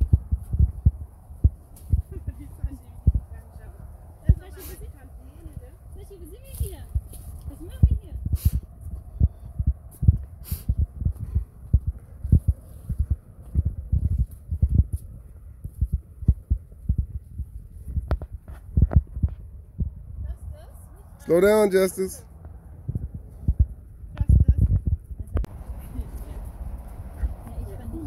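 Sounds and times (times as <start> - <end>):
handling thumps and rumbling: 5.4 - 20.6.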